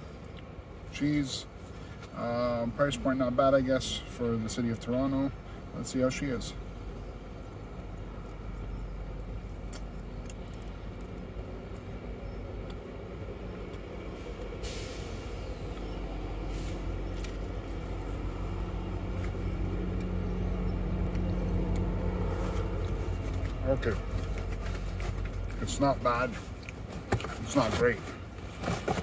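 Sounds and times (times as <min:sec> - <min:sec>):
city traffic rumble: 0:00.0 - 0:29.0
vehicle engines passing: 0:00.0 - 0:29.0.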